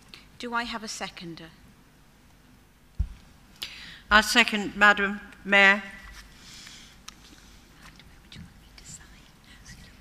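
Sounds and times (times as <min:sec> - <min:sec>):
faint whispered talk: 0:07.8 - 0:10.0.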